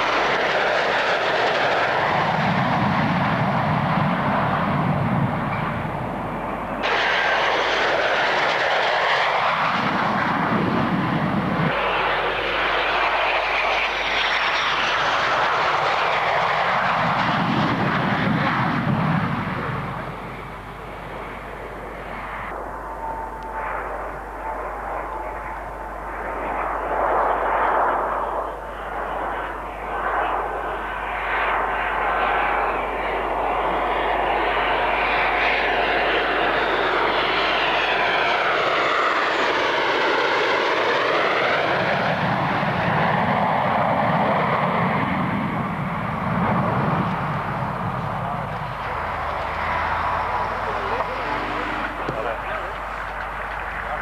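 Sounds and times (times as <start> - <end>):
fighter jets roaring low: 0.0 - 54.0.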